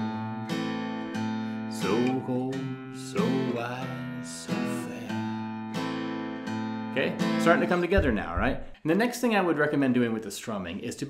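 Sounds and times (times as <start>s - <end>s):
acoustic guitar strumming blues: 0.0s - 8.3s.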